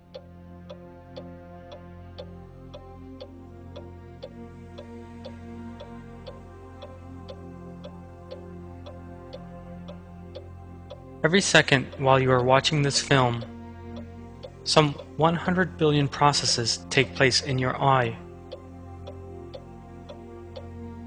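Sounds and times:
clock ticking: 0.0 - 21.0
low synthesizer drone: 0.0 - 21.0.

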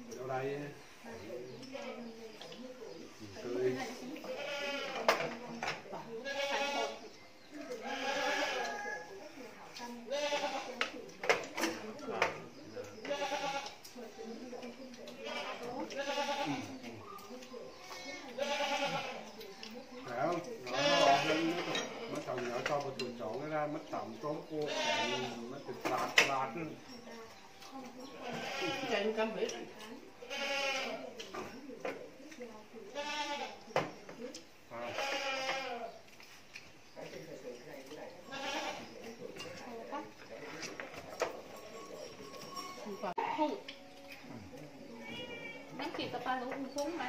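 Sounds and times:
people talking: 1.1 - 35.2, 37.0 - 47.0.

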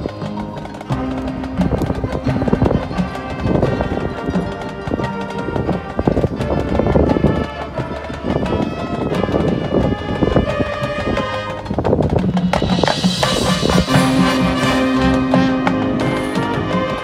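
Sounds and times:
fast clattering percussion rhythm: 0.0 - 17.0
marching band playing: 0.0 - 17.0.

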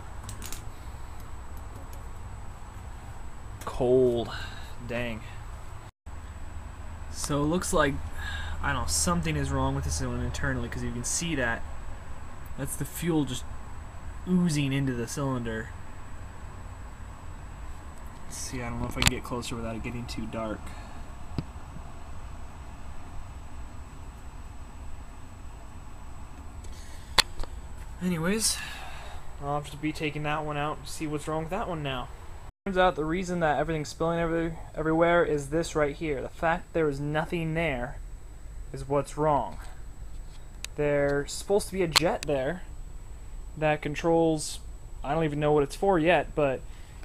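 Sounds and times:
background rumble and hiss: 0.0 - 47.0.

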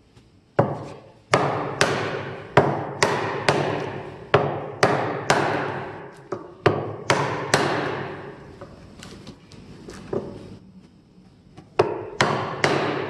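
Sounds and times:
hammer striking chisel handle: 0.6 - 8.2, 11.8 - 13.0.

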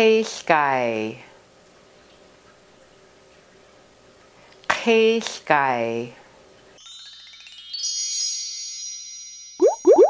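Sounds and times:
bright chime tones: 6.8 - 10.0
short upward bloops: 9.6 - 10.0.

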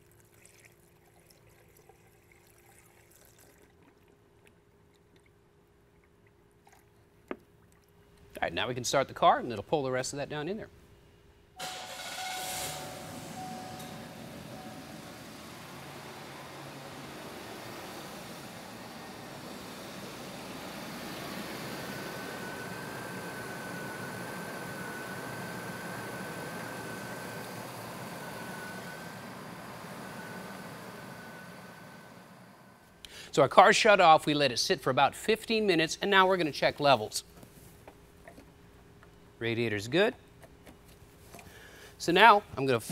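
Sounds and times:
thin steady whine: 11.4 - 40.2
car engine starting and idling: 11.6 - 32.9.

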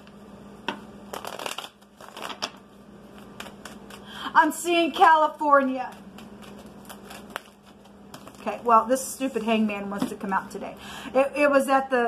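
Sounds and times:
cards being shuffled: 1.1 - 4.1, 5.9 - 8.7.

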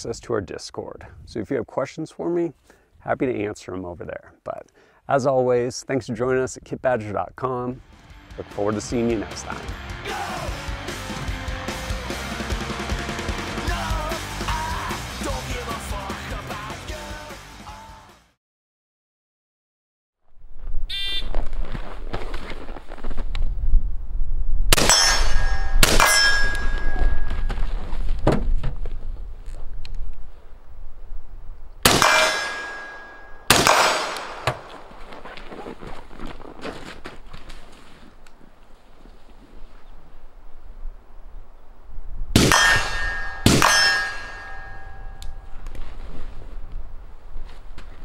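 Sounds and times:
wind rumble on microphone: 20.3 - 24.8, 39.4 - 42.9
rifle shots with metallic ringing: 24.7 - 27.3, 31.9 - 34.8, 42.4 - 45.5
loud metal clangs: 24.8 - 27.5, 31.9 - 34.8, 42.4 - 45.5
short ding: 24.9 - 27.5, 32.0 - 33.5, 42.5 - 45.5.

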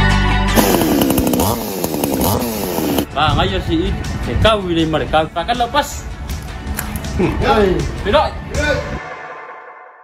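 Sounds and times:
chainsaw revving: 0.6 - 3.1.

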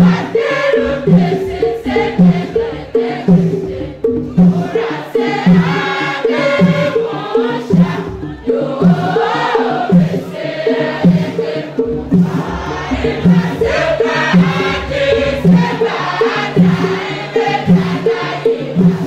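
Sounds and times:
low repeating accompaniment: 0.0 - 19.0
women singing church song: 0.0 - 19.0.

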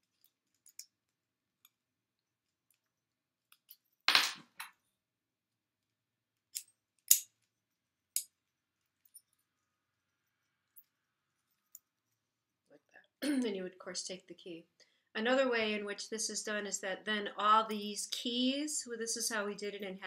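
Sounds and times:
metal padlocks clicking: 6.5 - 7.4.

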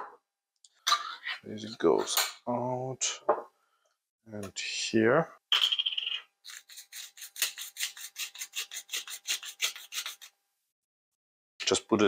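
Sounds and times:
spice grinder rasping: 6.4 - 10.3.

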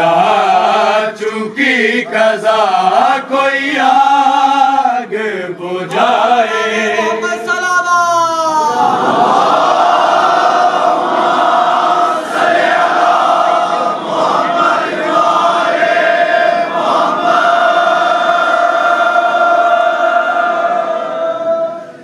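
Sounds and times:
men chanting one long note: 0.0 - 22.0.

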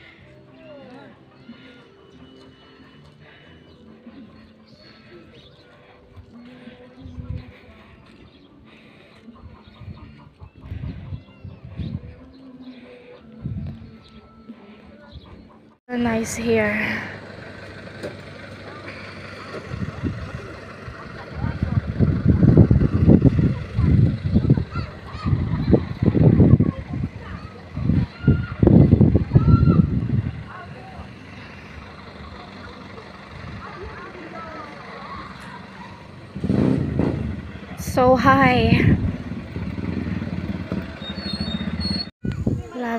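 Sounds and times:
wind buffeting microphone: 9.3 - 12.4, 13.3 - 14.1, 19.6 - 31.9, 33.0 - 34.2, 35.2 - 42.9.

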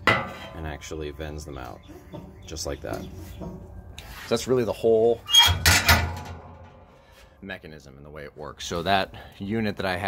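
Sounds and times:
metal parts rattling: 5.4 - 6.8.

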